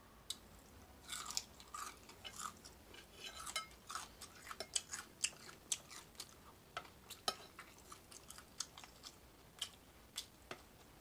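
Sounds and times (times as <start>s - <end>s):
crunchy chewing of bacon: 1.0s - 10.4s.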